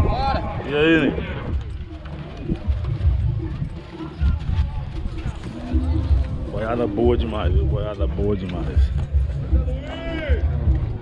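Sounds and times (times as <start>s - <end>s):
faint voices: 0.0s - 11.0s
low thumps and rumble: 0.0s - 11.0s.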